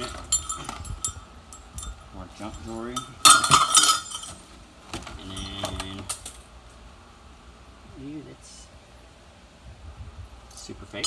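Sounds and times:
jewelry clinking: 0.0s - 4.5s.

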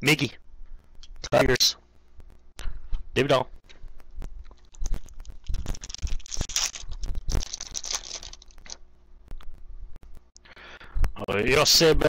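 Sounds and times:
cards rustling and scraping: 3.7s - 8.8s.

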